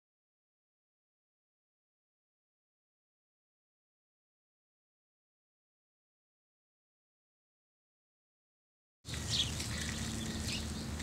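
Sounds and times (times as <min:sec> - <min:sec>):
low steady rumble: 0:09.1 - 0:11.0
small birds chirping: 0:09.1 - 0:11.0.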